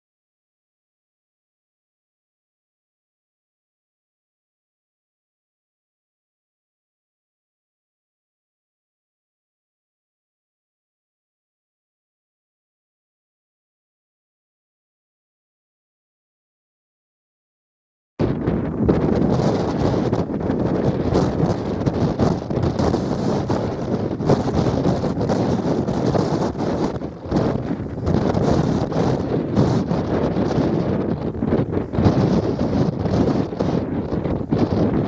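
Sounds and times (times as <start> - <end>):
wind buffeting microphone: 18.2 - 35.0.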